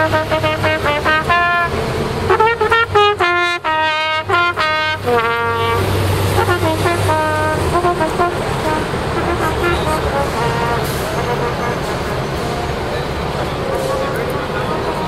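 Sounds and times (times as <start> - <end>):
trumpet playing short notes: 0.0 - 11.9
street crowd din: 0.0 - 15.0
scattered voices: 10.2 - 15.0.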